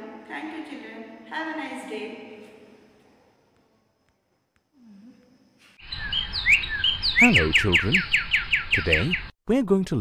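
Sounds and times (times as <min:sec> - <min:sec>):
background ambience: 0:00.0 - 0:08.1
birds chirping: 0:05.8 - 0:09.4.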